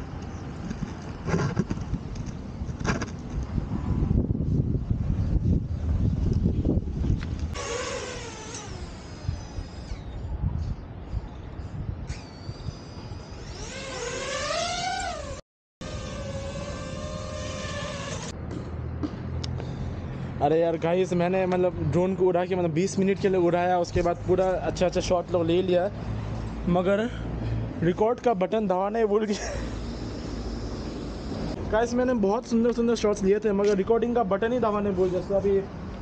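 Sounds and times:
wind buffeting the microphone: 0:00.3 - 0:07.6, 0:09.2 - 0:13.2
drone propellers whining: 0:07.5 - 0:10.3, 0:12.1 - 0:18.4, 0:29.6 - 0:31.6.

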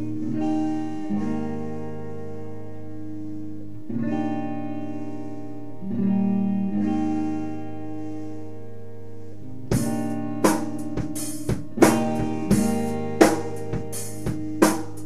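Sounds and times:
guitar playing ringing chords: 0:00.0 - 0:15.0.

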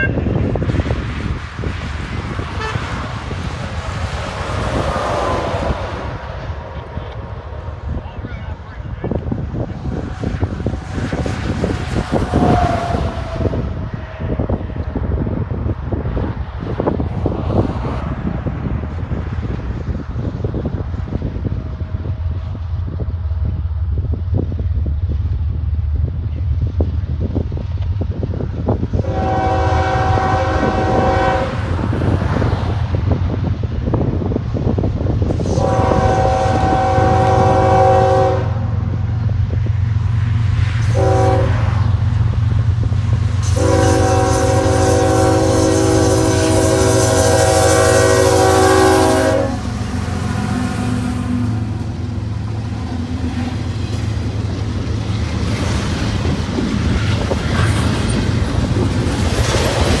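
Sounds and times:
passing train rumble: 0:00.0 - 1:00.0
locomotive air horn: 0:02.6 - 0:03.0, 0:12.1 - 0:13.8, 0:29.0 - 0:31.7, 0:35.4 - 0:38.7, 0:40.8 - 0:41.8, 0:43.4 - 0:51.9.

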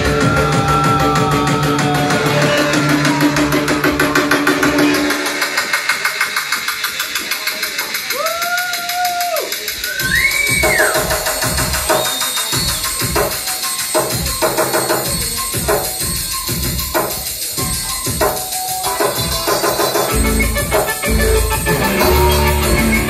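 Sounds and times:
fast ticking beat: 0:00.0 - 0:23.0.

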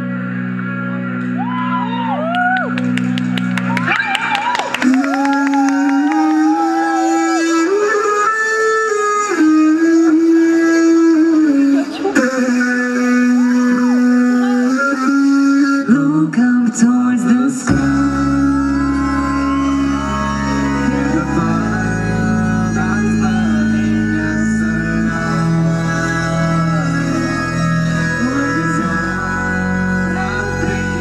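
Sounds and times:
live band music: 0:17.6 - 0:31.0.

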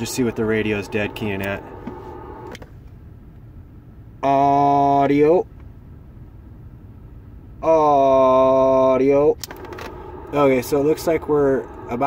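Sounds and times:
vehicle engine idling: 0:00.0 - 0:03.7, 0:09.4 - 0:12.0.

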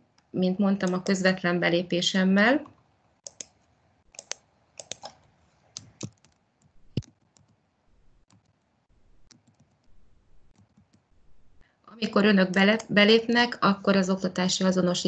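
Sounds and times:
mouse clicks: 0:02.6 - 0:03.6
keyboard keystrokes: 0:04.2 - 0:05.2, 0:05.8 - 0:07.6.

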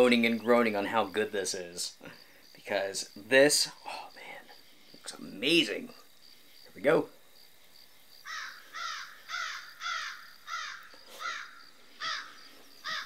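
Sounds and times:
crickets chirping: 0:00.0 - 0:13.0
bird harsh calls: 0:08.2 - 0:13.0.

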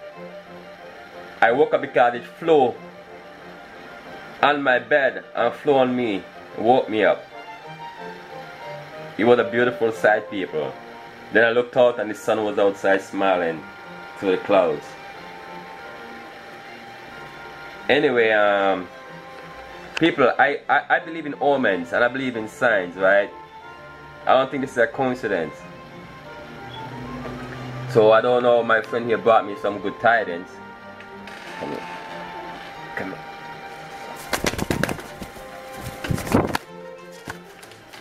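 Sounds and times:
pigeon wings flapping: 0:34.0 - 0:38.0.

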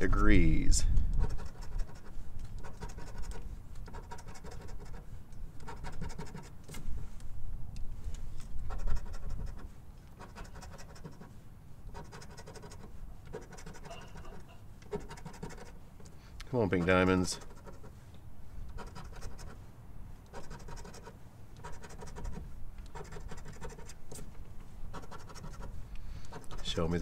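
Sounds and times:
coin scratching lottery ticket: 0:01.2 - 0:06.6, 0:08.6 - 0:15.9, 0:16.6 - 0:18.0, 0:18.7 - 0:19.6, 0:20.3 - 0:24.2, 0:24.9 - 0:27.0.

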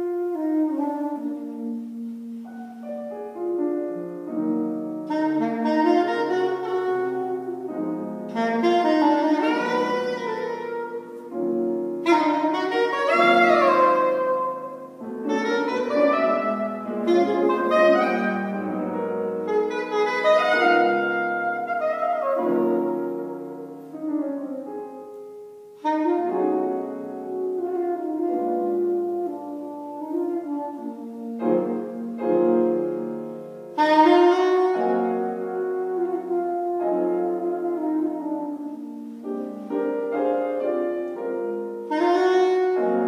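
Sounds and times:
saxophone holding bending notes: 0:00.0 - 0:03.6, 0:04.4 - 0:43.0
grand piano accompaniment: 0:00.0 - 0:43.0.

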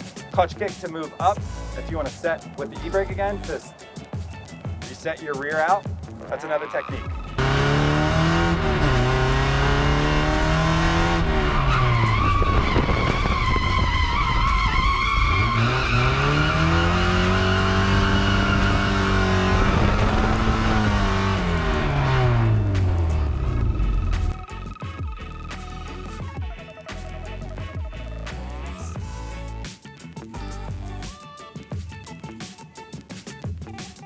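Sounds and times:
car engine revving: 0:07.1 - 0:24.7
tyres squealing: 0:10.6 - 0:21.3.

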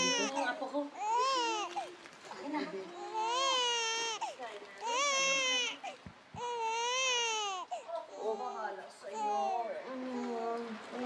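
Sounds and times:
baby crying: 0:00.0 - 0:01.9, 0:03.0 - 0:07.9.

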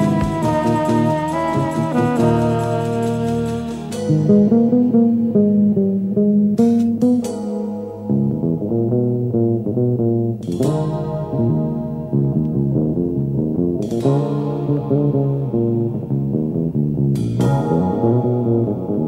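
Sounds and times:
cymbal crashes: 0:00.0 - 0:04.9
bass guitar: 0:00.0 - 0:19.0
fast plucked notes: 0:00.0 - 0:19.0.

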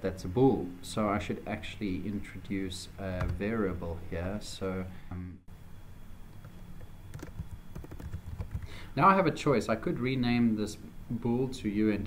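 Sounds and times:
computer keyboard typing: 0:06.5 - 0:08.7.

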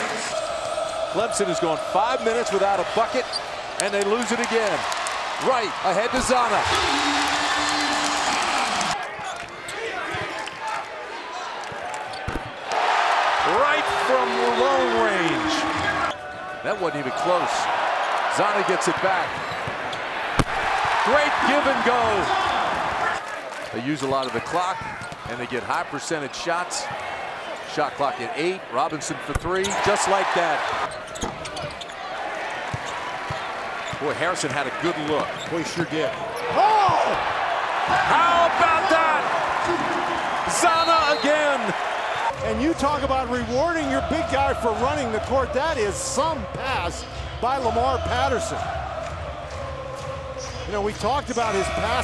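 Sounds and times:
arena crowd noise: 0:00.0 - 0:52.0.

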